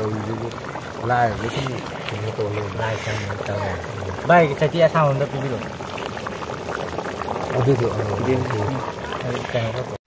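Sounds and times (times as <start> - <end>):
people talking: 0.0 - 5.7, 7.5 - 10.0
curry bubbling in a wok: 0.0 - 10.0.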